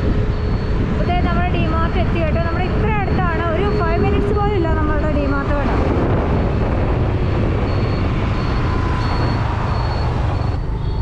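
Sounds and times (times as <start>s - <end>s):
car driving on road: 0.0s - 11.0s.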